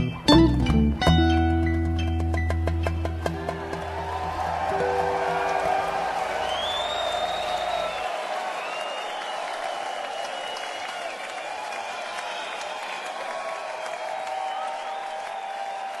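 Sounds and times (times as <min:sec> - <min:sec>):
audience applauding: 0:02.6 - 0:16.0
crowd voices and cheers: 0:03.1 - 0:16.0.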